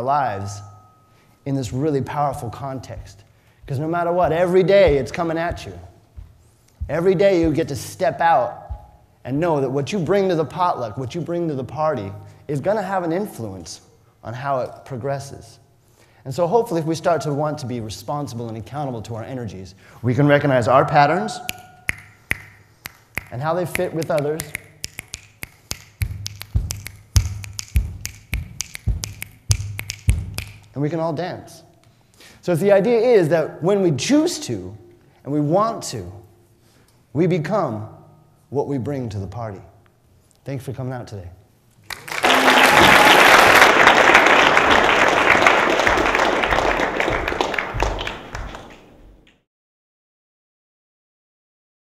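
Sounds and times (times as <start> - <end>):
low body percussion thump: 2.9 - 9.1, 26.0 - 30.4
finger snaps: 21.4 - 30.8
audience applauding: 41.9 - 49.2.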